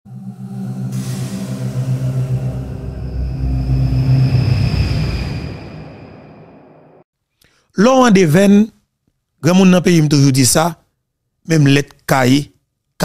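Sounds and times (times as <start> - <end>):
deep bass rumble: 0.1 - 7.0
sustained low tones: 0.1 - 7.0
whoosh: 0.1 - 7.1.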